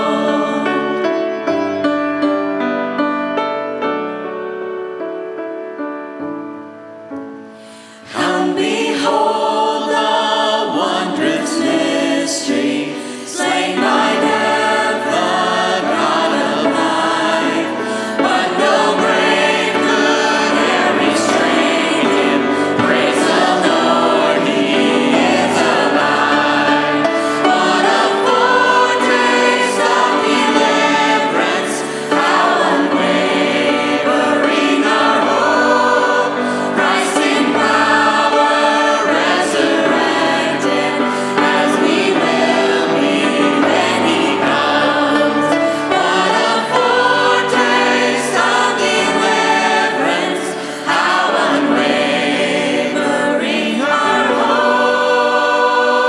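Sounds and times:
group singing a hymn: 0.0s - 1.8s, 7.7s - 56.0s
grand piano accompaniment: 0.0s - 56.0s.

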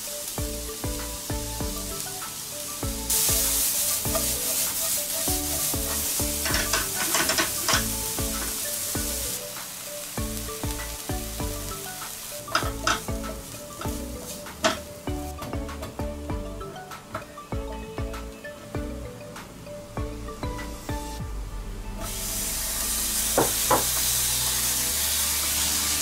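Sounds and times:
onion sizzling in hot oil: 0.0s - 17.5s, 22.0s - 26.0s
spoon scraping a pan: 5.9s - 8.6s.

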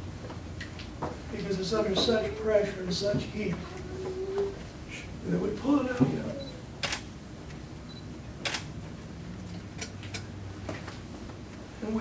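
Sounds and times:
low room hum: 0.0s - 12.0s
sharp clicks: 6.8s - 7.1s, 8.4s - 8.7s.

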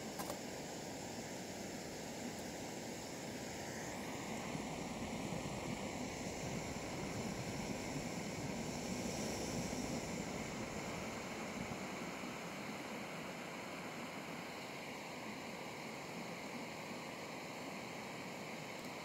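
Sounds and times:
camp stove burner hissing: 0.0s - 19.0s.

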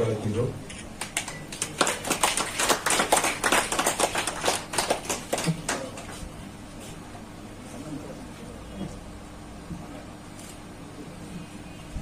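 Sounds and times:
audience clapping: 1.0s - 6.2s.

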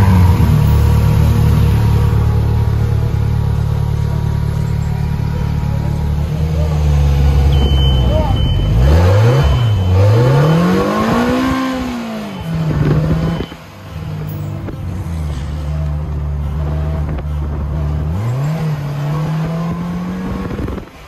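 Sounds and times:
motorcycle engine revving: 0.0s - 13.6s.

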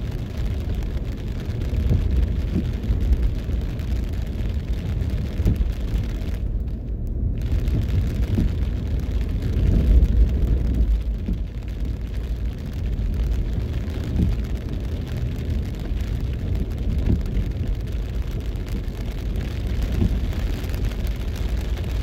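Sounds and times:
car driving on wet road: 0.0s - 22.0s
rain pattering on car: 0.0s - 22.0s.

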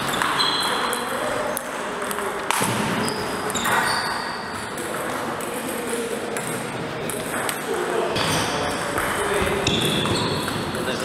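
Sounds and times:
people talking: 0.1s - 4.0s, 4.6s - 11.0s.

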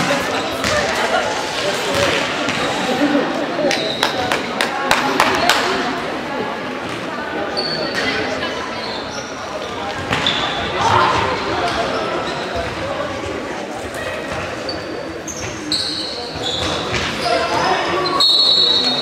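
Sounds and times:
players and spectators calling out: 0.0s - 19.0s
trainers squeaking on floor: 14.6s - 19.0s.

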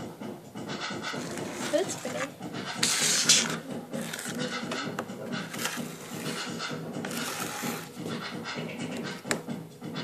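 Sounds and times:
metal rod scraping thick paint: 1.1s - 8.3s.

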